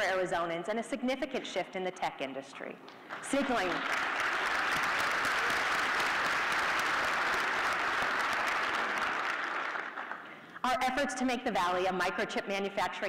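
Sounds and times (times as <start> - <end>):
audience applauding: 3.1 - 10.4.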